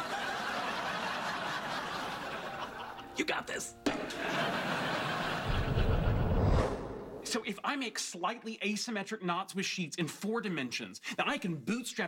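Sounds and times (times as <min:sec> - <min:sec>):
studio audience laughing: 0:00.0 - 0:03.1, 0:03.9 - 0:06.5.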